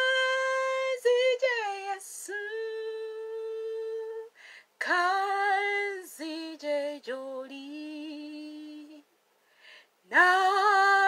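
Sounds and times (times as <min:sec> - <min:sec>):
woman singing unaccompanied: 0:00.0 - 0:09.1, 0:10.1 - 0:11.0.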